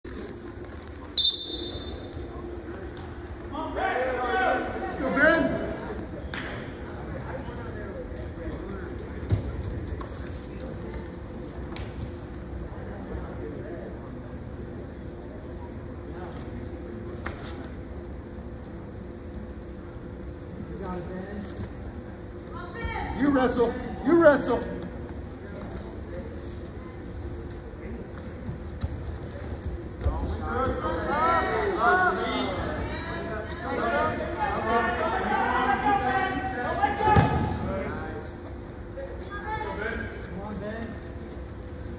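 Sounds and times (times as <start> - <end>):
hum of a large hall: 0.0 - 41.9.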